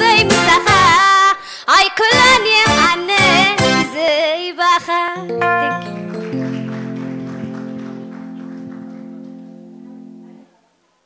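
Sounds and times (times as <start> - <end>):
electronic keyboard chord: 5.2 - 10.5.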